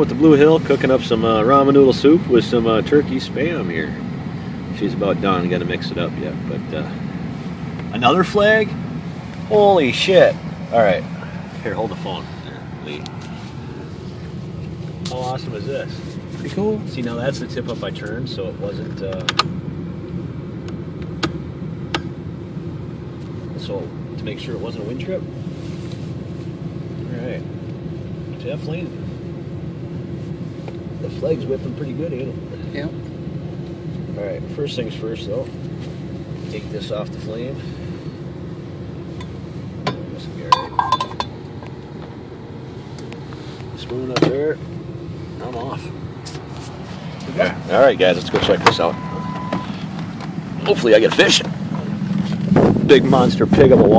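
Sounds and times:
steady low hum: 0:00.0 - 0:53.9
vehicle idling rumble: 0:00.0 - 0:53.9
pot and spoon clinking: 0:40.5 - 0:41.3.

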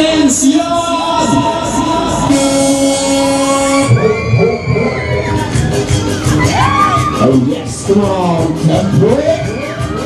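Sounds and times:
held synth chord: 0:01.5 - 0:04.9.

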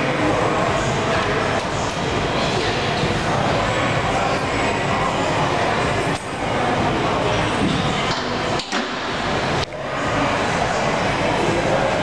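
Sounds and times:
busy gym background din: 0:00.0 - 0:12.0.

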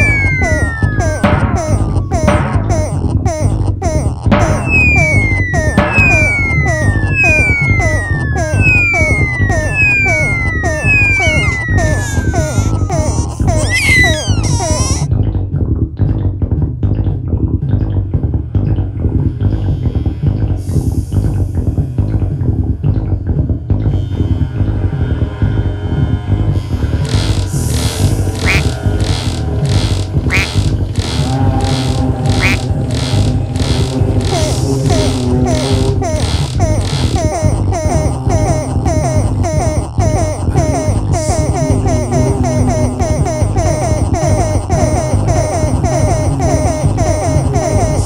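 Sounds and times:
high siren-like synth tone sliding down: 0:00.0 - 0:01.4, 0:04.4 - 0:12.9
synthesizer pulse: 0:00.0 - 0:03.6, 0:04.2 - 0:15.0
experimental synthesizer music: 0:00.0 - 0:15.1, 0:28.4 - 0:28.8, 0:30.3 - 0:30.6, 0:32.2 - 0:32.8, 0:33.6 - 0:48.0.

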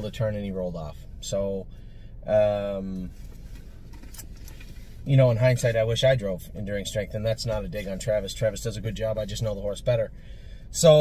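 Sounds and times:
car interior hum: 0:00.0 - 0:11.0.

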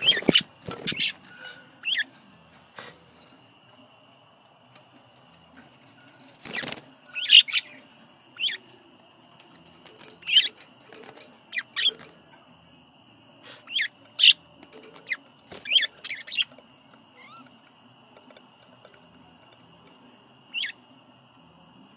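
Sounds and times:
budgerigars chirping: 0:00.0 - 0:02.1, 0:06.5 - 0:08.7, 0:10.1 - 0:10.6, 0:11.5 - 0:12.1, 0:13.6 - 0:16.6, 0:17.2 - 0:17.5, 0:20.5 - 0:20.8.

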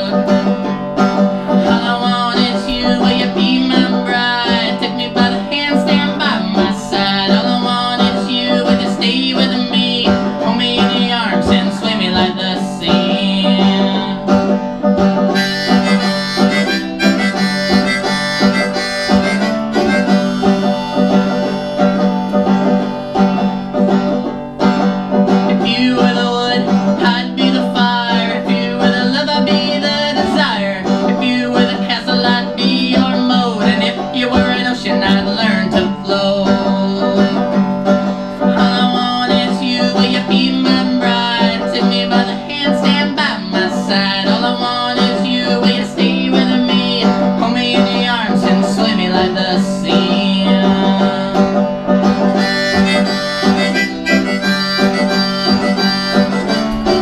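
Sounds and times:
banjo picked and strummed: 0:00.0 - 0:57.0.

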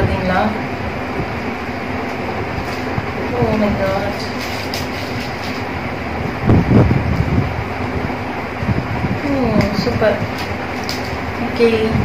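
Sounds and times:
steady rumbling background noise: 0:00.0 - 0:12.0
plastic wrapper rustling: 0:03.9 - 0:05.8, 0:10.3 - 0:11.3.

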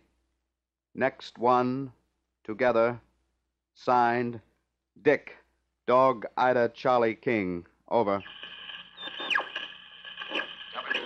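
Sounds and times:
shortwave radio whine: 0:08.0 - 0:11.0.

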